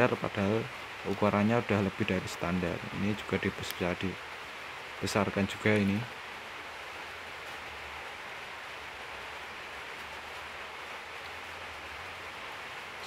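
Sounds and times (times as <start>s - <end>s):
steady background hiss: 0.0s - 13.0s.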